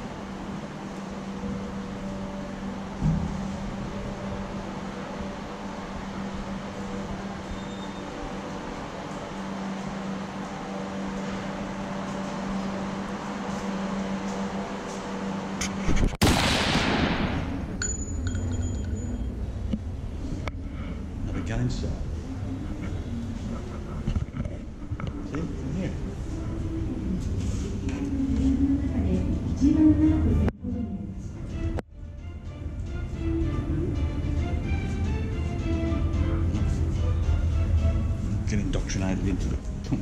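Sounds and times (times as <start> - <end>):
low mechanical hum: 0.0 - 40.0.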